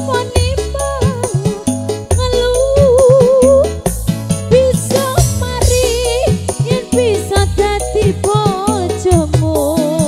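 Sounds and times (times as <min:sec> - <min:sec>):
driving drum beat: 0:00.0 - 0:10.0
keyboard melody: 0:00.0 - 0:10.0.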